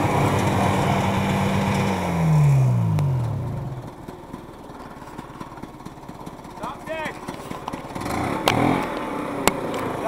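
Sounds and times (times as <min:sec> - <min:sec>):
snowmobile engine idling: 0:00.0 - 0:10.0.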